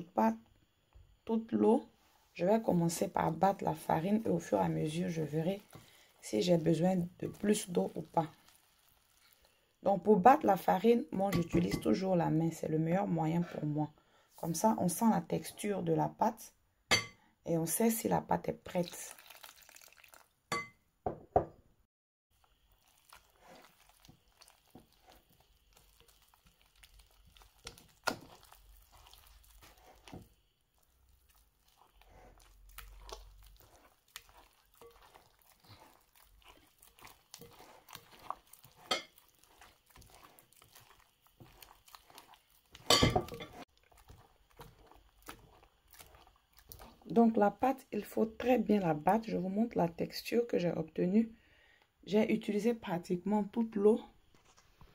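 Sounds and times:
water pouring: 4.4 - 9.6, 18.7 - 20.4, 22.4 - 30.2, 30.8 - 47.2
hand slapping wet dough: 27.3 - 30.3.

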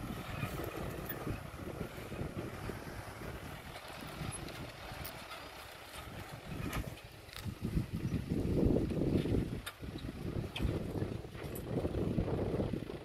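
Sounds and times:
tractor engine running: 0.0 - 13.0
wind noise on microphone: 0.0 - 13.0.

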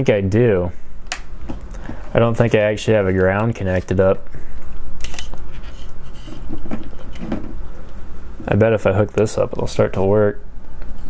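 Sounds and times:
steady low hum: 0.0 - 11.0
alligator clip clicks and handling: 5.0 - 5.4.

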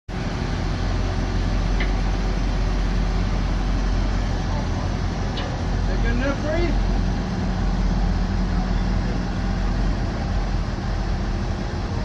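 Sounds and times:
truck engine idling: 0.1 - 12.0.

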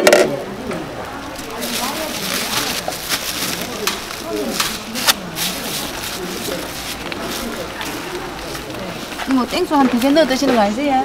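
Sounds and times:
low background voices: 0.0 - 11.0
plastic bag rustling and crackling: 1.0 - 11.0.

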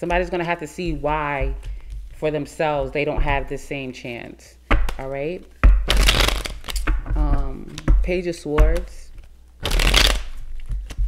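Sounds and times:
cards tapping and flicking: 5.6 - 8.0, 8.6 - 11.0
cards shuffling flutter: 5.9 - 6.8, 9.2 - 11.0.

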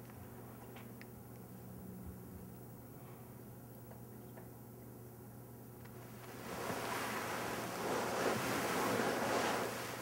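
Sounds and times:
bedcovers and pillow rustling: 6.1 - 10.0.

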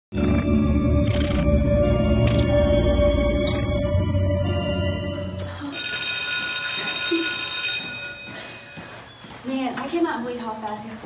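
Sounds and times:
electric school bell ringing: 4.3 - 9.1.

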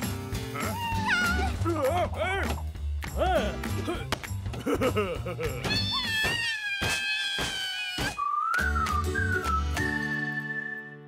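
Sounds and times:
cat meowing: 5.7 - 8.2.

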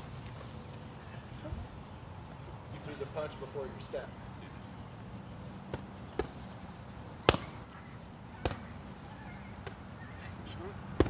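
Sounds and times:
punches slapping focus mitts: 5.7 - 6.4, 7.2 - 7.7, 8.4 - 8.9.

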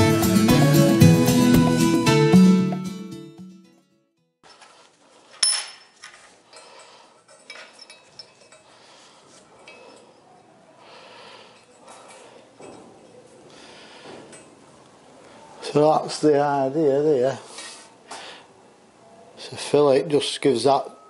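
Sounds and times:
metal clinks and scraping: 4.5 - 10.5
metal clank: 5.4 - 8.6.

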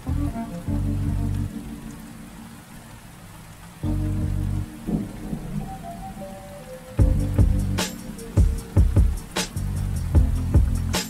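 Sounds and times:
calm music with low notes: 0.0 - 11.0
rain falling on a puddle: 0.0 - 11.0
sharp crack: 7.8 - 8.6, 9.2 - 9.8.

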